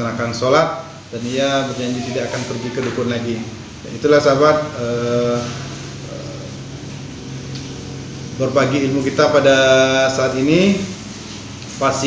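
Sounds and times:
air conditioner hum and hiss: 0:00.0 - 0:12.0.

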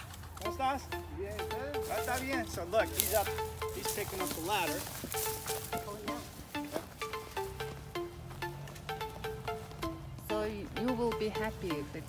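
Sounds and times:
background music: 0:00.0 - 0:12.0
held notes: 0:00.0 - 0:12.0
voices talking: 0:00.0 - 0:12.0.

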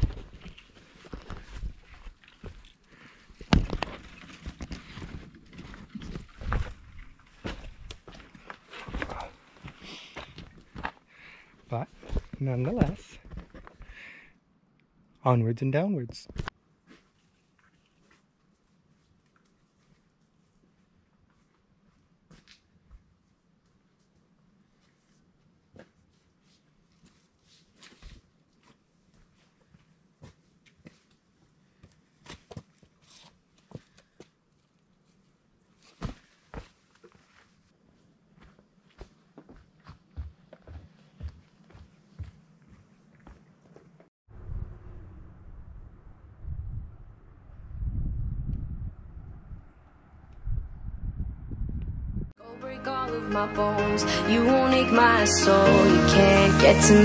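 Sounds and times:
footsteps on rocky trail: 0:00.0 - 0:14.0, 0:38.4 - 0:43.9.

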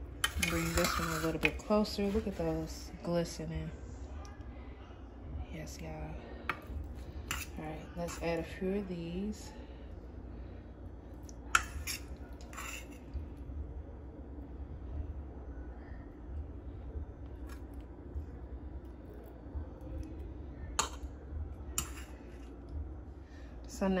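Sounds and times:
steady low rumble: 0:00.0 - 0:12.4, 0:13.0 - 0:24.0.

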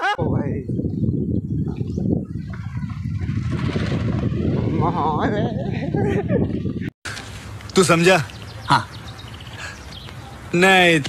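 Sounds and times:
wind on microphone: 0:00.0 - 0:07.0.

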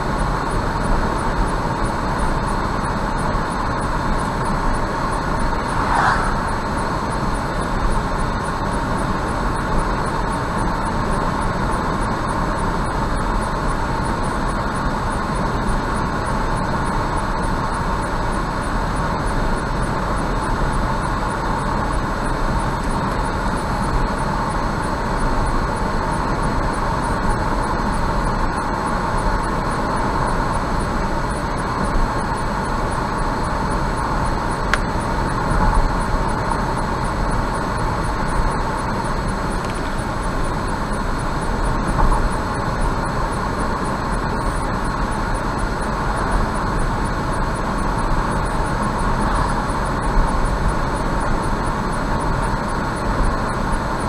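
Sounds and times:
car engine hum: 0:00.0 - 0:54.0
road and tyre noise: 0:00.0 - 0:54.0.

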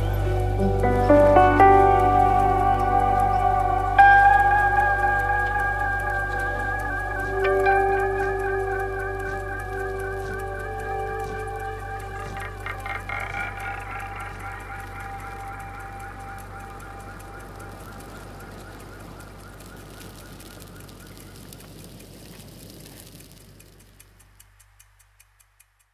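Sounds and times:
low drone with wavering high tones: 0:00.0 - 0:21.2
faint clock-like ticks: 0:00.0 - 0:25.9.

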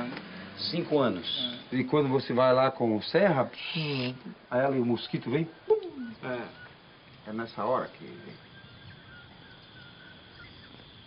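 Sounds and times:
insect drone: 0:00.0 - 0:11.0
faint bird calls: 0:03.4 - 0:11.0.

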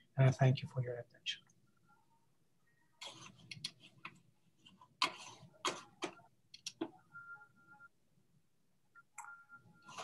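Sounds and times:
computer mouse clicks: 0:05.0 - 0:07.0.

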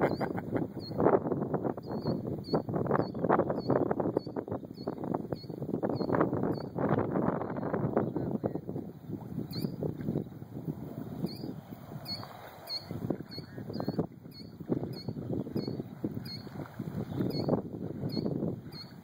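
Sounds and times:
wind gusting over microphone: 0:00.0 - 0:19.0
small bird chirping: 0:01.8 - 0:06.8, 0:09.5 - 0:09.8, 0:11.2 - 0:16.5, 0:17.1 - 0:17.5, 0:18.1 - 0:19.0.

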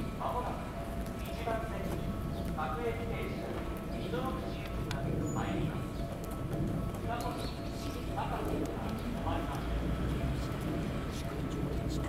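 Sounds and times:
level crossing warning bell: 0:00.0 - 0:12.0
person's voice: 0:07.0 - 0:12.0.

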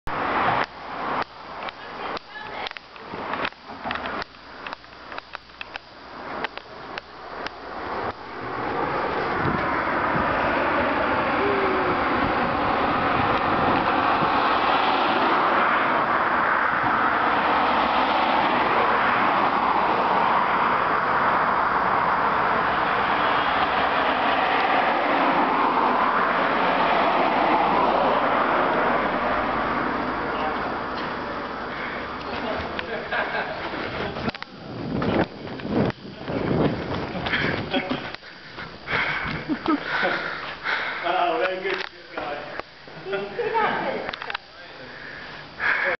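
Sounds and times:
road traffic: 0:00.0 - 0:45.9
running footsteps on concrete: 0:33.5 - 0:40.9.

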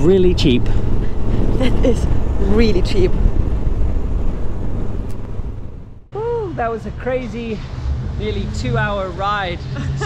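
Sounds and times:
wind blowing across microphone: 0:00.0 - 0:06.2.

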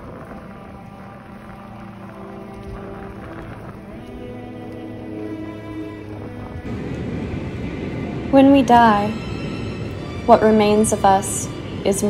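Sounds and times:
bicycle tyres on wet pavement: 0:00.0 - 0:12.0
low background music drone: 0:00.0 - 0:12.0
wind rushing over microphone: 0:00.0 - 0:12.0.

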